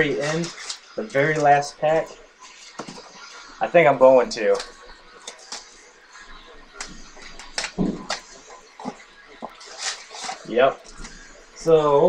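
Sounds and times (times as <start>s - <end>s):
card packs rustling: 0.0s - 12.0s.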